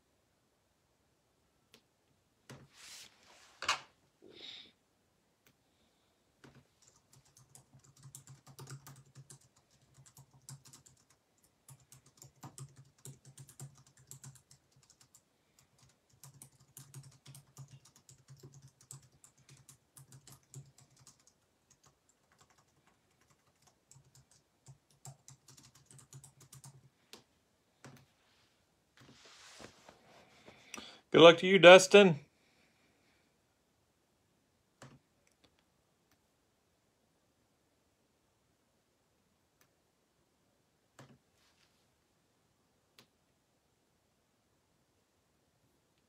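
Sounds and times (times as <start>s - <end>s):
faint typing on keyboard: 6.4s - 28.2s, 34.7s - 36.3s, 40.9s - 41.4s.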